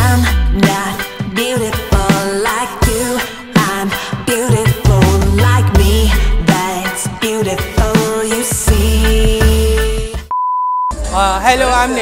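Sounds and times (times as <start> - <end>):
pop song with singing: 0.0 - 10.3, 10.9 - 12.0
censor bleep: 10.3 - 11.0.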